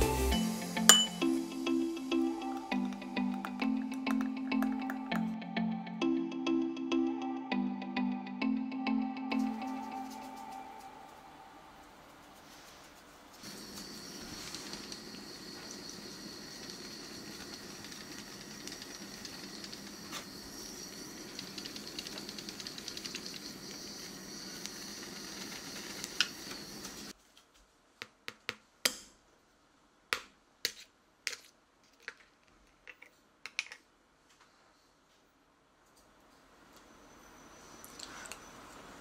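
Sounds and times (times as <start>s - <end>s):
sugar crackling: 2.4s - 5.3s
blowtorch hissing: 13.4s - 27.1s.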